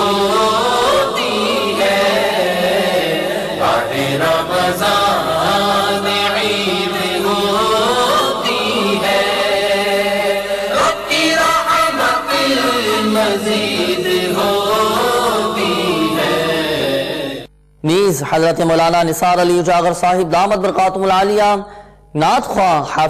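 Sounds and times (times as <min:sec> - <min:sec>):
man chanting a recitation: 0:00.0 - 0:23.0.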